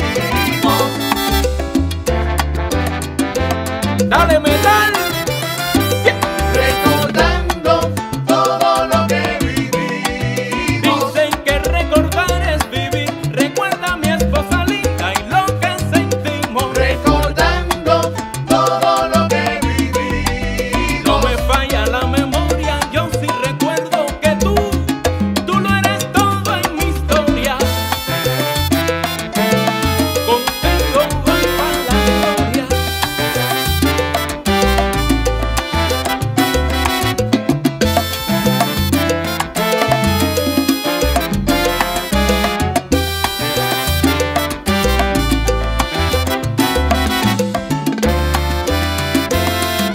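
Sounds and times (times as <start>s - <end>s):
instrumental salsa music: 0.0s - 49.9s.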